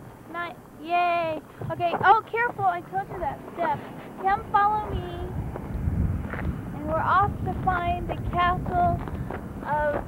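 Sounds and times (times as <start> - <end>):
wind rumbling on microphone: 0.0 - 10.0
children talking: 0.3 - 5.4, 6.8 - 10.0.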